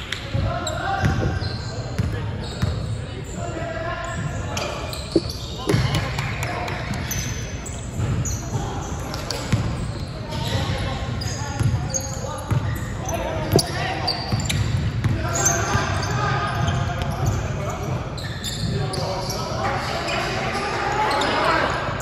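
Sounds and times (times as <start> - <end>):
sneakers squeaking on floor: 0.2 - 21.8
basketball bouncing: 5.1 - 6.3.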